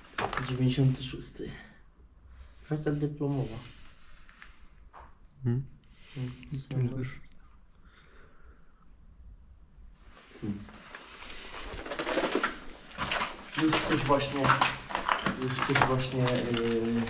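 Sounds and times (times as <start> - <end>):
man talking: 0.2 - 1.8, 2.7 - 3.8, 5.4 - 7.3, 10.4 - 10.8, 13.6 - 17.0
footsteps crunching on rubble: 10.8 - 17.0.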